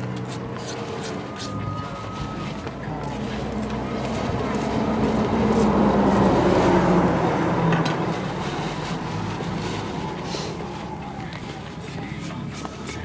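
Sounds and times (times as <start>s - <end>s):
passing vehicle engine hum: 0.0s - 13.0s.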